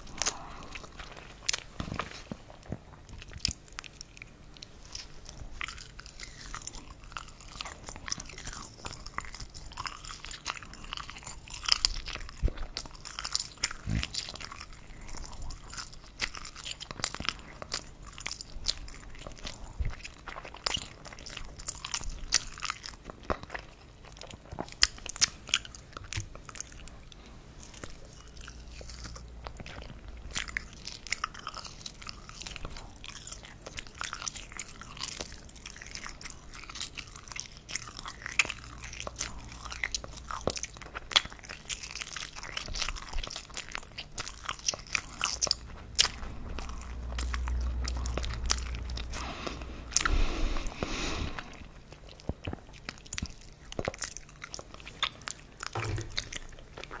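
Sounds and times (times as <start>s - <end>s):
person chewing and biting: 0.0s - 57.0s.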